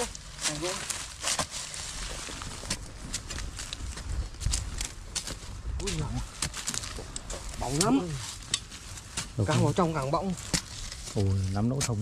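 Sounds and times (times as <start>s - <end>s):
hoes chopping stony soil: 2.2s - 11.0s.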